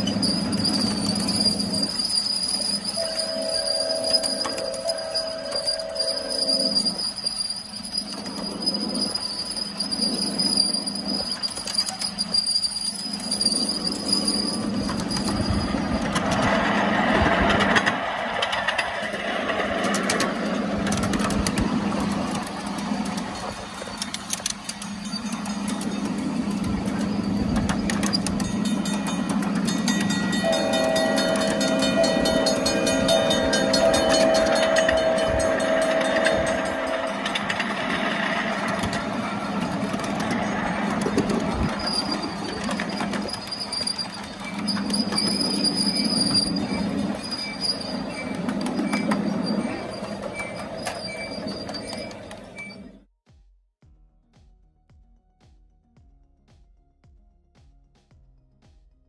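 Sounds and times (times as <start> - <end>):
steam locomotive whistle: 0.2 - 8.1, 30.4 - 38.2
train wheels clicking over rails: 7.9 - 52.6.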